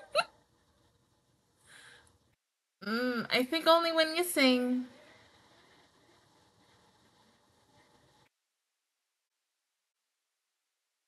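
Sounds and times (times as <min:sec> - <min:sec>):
woman laughing: 0:00.0 - 0:00.3
faint breathy hiss: 0:01.5 - 0:02.3, 0:04.2 - 0:08.3.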